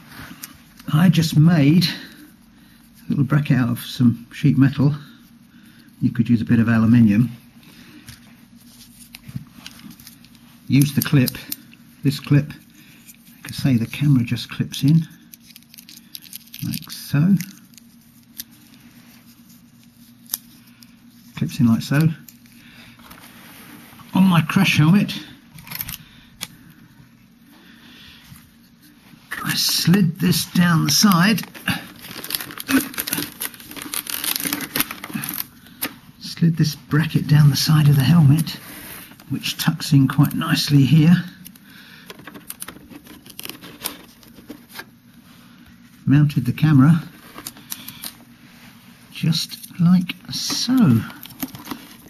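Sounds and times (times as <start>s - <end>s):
steady low hum: 0.0s - 52.0s
handling small plastic camera: 14.9s - 20.9s, 30.8s - 35.9s, 41.4s - 44.9s, 47.2s - 48.2s, 49.5s - 52.0s.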